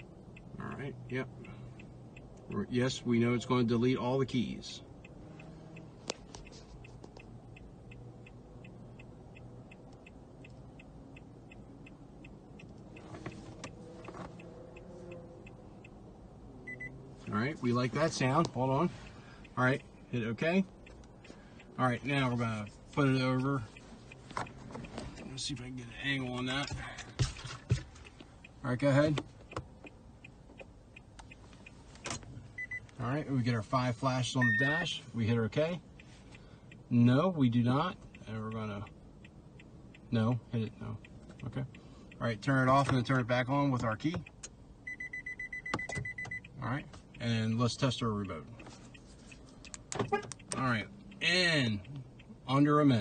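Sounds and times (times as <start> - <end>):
hazard-light flasher ticking: 3.7 - 17.4
short electronic beep: 16.7 - 16.9, 34.4 - 34.7, 44.9 - 46.4.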